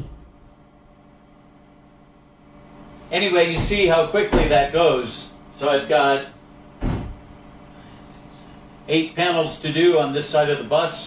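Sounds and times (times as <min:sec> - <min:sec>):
low droning hum: 0:00.0 - 0:11.0.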